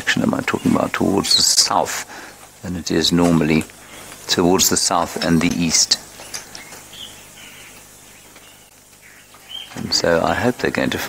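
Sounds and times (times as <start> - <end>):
low background hiss: 0.0 - 11.0
faint bird chirps: 3.8 - 10.1.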